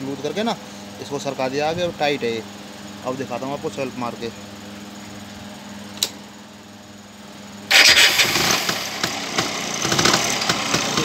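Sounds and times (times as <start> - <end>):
starter motor cranking engine: 7.7 - 11.0.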